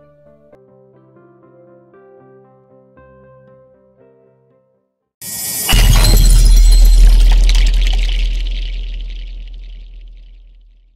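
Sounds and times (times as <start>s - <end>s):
crash with crackling hiss: 5.2s - 10.4s
deep sustained boom: 5.6s - 10.5s.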